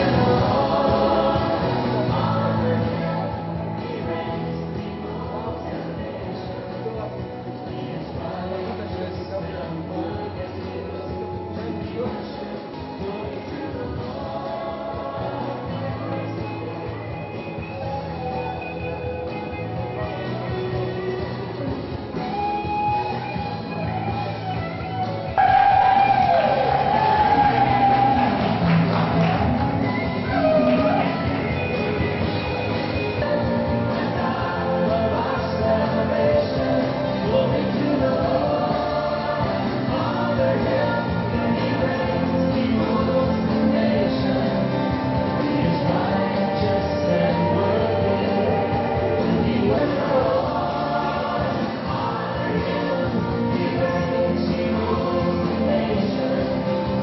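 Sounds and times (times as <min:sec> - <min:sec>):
choir singing gospel: 0:00.0 - 0:10.8, 0:11.9 - 0:16.7, 0:25.4 - 0:57.0
live band music: 0:16.0 - 0:57.0.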